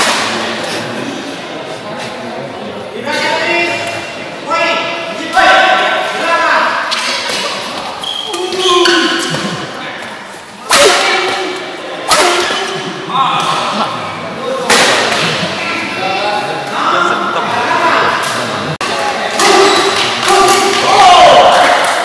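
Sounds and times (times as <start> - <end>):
voices calling out loudly: 3.0 - 22.0
rackets hitting shuttlecock: 6.8 - 13.6, 14.7 - 15.5, 18.2 - 22.0.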